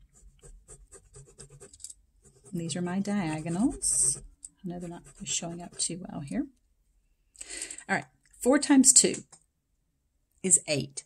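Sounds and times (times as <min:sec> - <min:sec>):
pen scratching on paper: 0:00.0 - 0:06.3.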